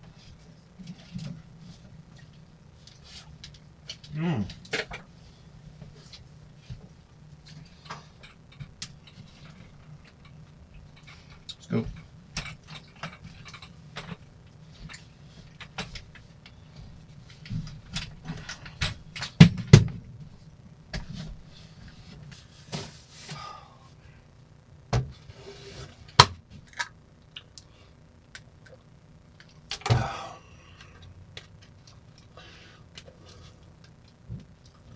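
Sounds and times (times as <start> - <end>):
steady low hum: 0.0 - 34.9.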